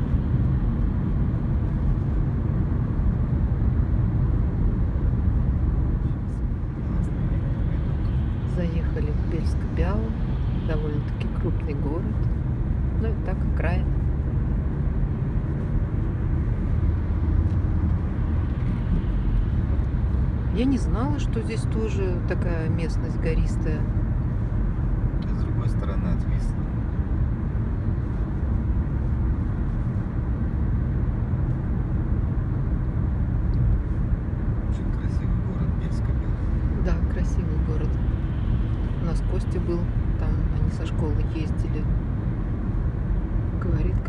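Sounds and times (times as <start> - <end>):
car road and engine noise: 0.0 - 44.0.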